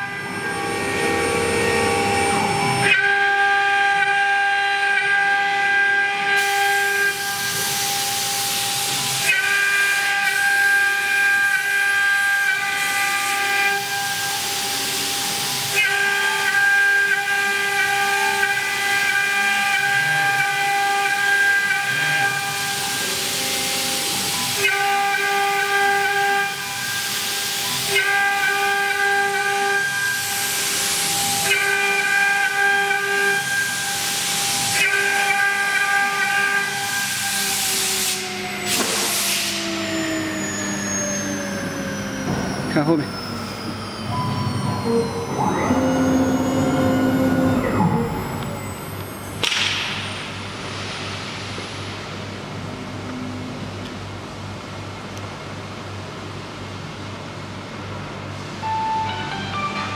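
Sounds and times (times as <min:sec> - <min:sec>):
higher tones: 0:00.0 - 0:03.2, 0:39.5 - 0:50.8
router spindle whine: 0:00.0 - 0:49.7.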